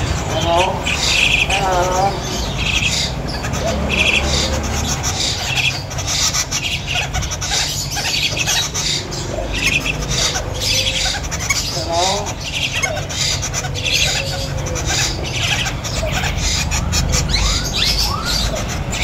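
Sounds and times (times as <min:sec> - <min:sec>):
birds squawking: 0:00.0 - 0:19.0
low wavering bird calls: 0:00.0 - 0:19.0.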